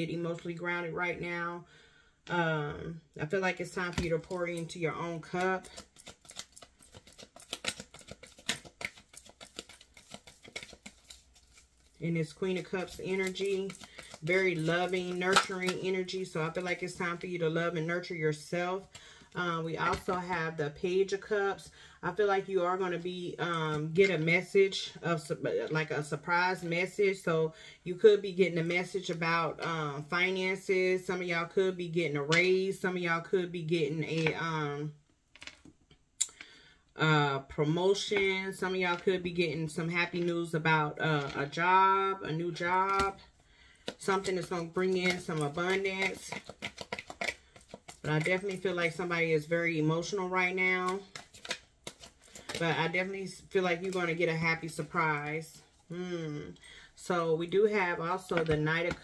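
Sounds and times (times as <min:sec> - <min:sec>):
cards shuffled by hand: 0:05.3 - 0:17.0, 0:43.8 - 0:49.1, 0:50.8 - 0:55.1
fingernails clicking on cards: 0:05.8 - 0:11.7, 0:12.8 - 0:14.2.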